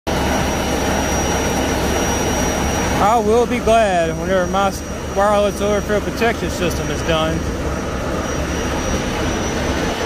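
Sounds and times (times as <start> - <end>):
high steady whine: 0.1 - 10.0
truck engine and pump drone: 0.1 - 10.0.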